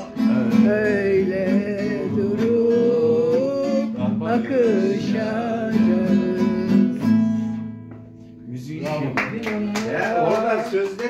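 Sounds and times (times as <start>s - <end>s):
guitar strumming chords: 0.0s - 9.2s.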